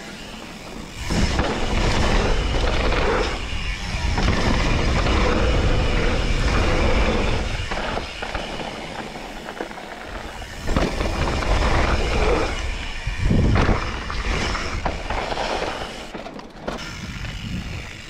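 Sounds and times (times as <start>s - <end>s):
bike frame and chain rattling: 0.0s - 18.0s
bike tyres rolling on dirt: 0.0s - 18.0s
bike landing thud: 1.0s - 12.6s, 13.3s - 17.8s
wind buffeting microphone: 1.0s - 15.4s, 16.8s - 18.0s.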